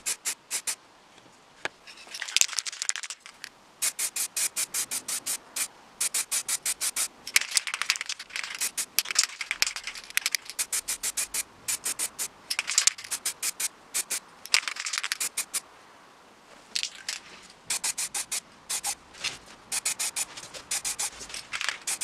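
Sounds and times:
spray can hissing in puffs: 0:00.0 - 0:00.8, 0:03.8 - 0:09.0, 0:10.2 - 0:15.6, 0:17.7 - 0:19.0, 0:19.7 - 0:22.0.

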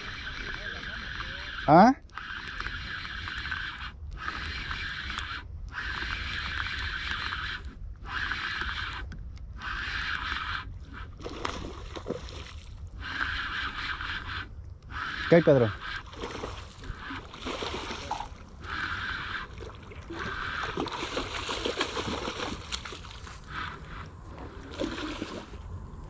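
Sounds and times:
fishing reel cranking: 0:00.0 - 0:26.0.

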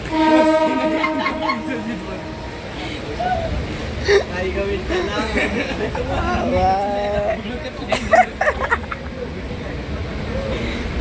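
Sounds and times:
train horn: 0:00.0 - 0:03.2
people laughing: 0:00.4 - 0:09.6.

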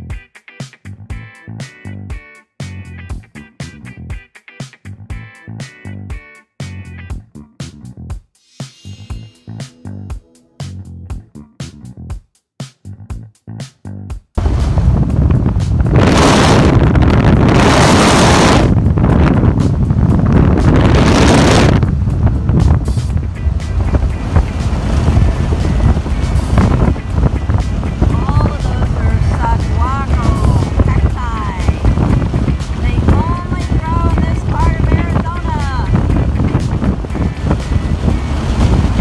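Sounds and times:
music: 0:00.0 - 0:39.0
steady low vehicle rumble: 0:08.9 - 0:12.2, 0:12.9 - 0:39.0
wind buffeting microphone: 0:14.4 - 0:39.0.

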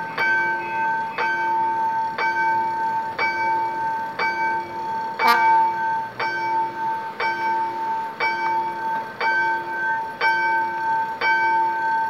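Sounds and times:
level crossing warning bell ringing: 0:00.0 - 0:12.0.

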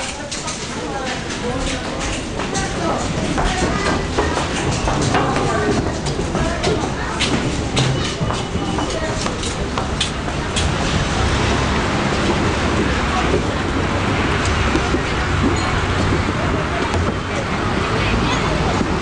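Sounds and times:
footsteps and clatter: 0:00.0 - 0:19.0
voices: 0:00.0 - 0:19.0.

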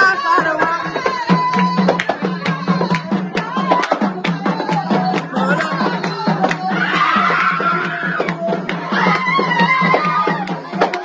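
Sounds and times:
drum beats: 0:00.0 - 0:11.0
festive singing: 0:00.0 - 0:11.0.

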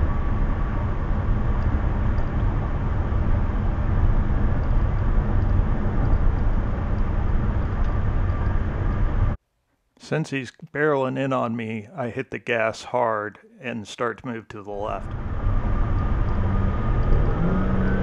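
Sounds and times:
car road and wind noise: 0:00.0 - 0:09.4, 0:15.0 - 0:18.0.

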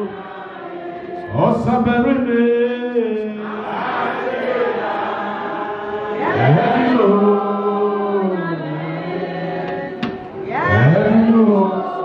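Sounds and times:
congregation singing: 0:00.0 - 0:12.0
man singing into microphone: 0:01.2 - 0:03.7, 0:06.2 - 0:12.0.

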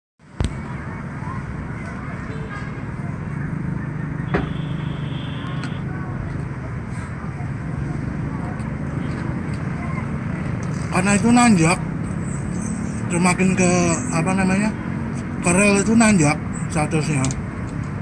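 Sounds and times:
faint distant voices: 0:00.2 - 0:18.0
street traffic rumble: 0:00.2 - 0:18.0.

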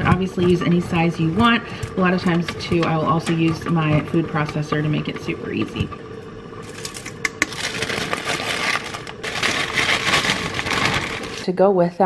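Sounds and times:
paper and plastic bag crinkling: 0:06.6 - 0:11.5.

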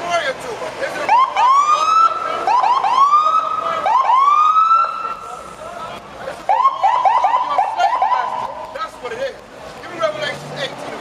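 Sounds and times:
siren chirping and wailing: 0:01.1 - 0:05.2, 0:06.5 - 0:08.6.

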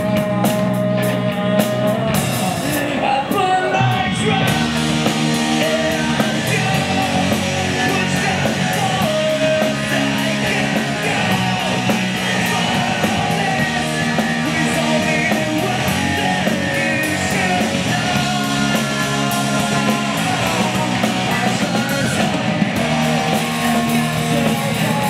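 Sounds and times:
bass guitar: 0:00.0 - 0:25.0
distorted electric guitars: 0:00.0 - 0:25.0
drum kit with cymbal beat: 0:00.0 - 0:25.0.

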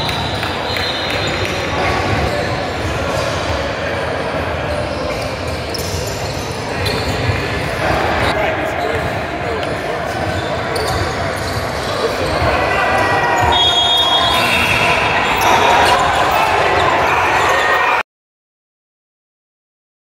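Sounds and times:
indistinct voices echoing: 0:00.0 - 0:18.0.

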